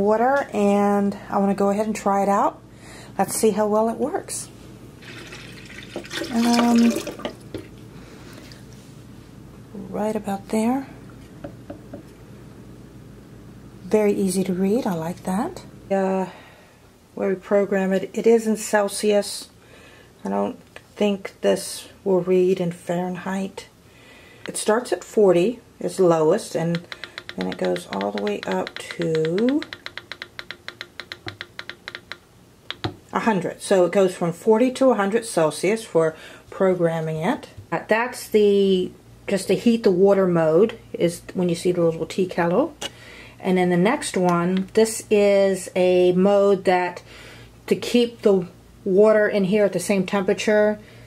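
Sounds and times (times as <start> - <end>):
kettle control panel ticking: 26.7 - 33.0.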